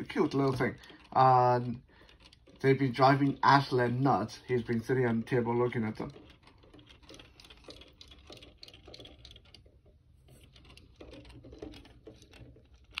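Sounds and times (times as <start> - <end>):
toy flippers clicking: 0.0 - 13.0.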